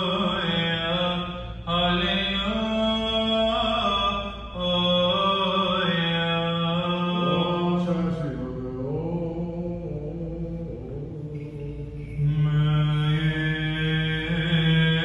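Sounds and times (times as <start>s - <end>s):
man chanting: 0.0s - 15.0s.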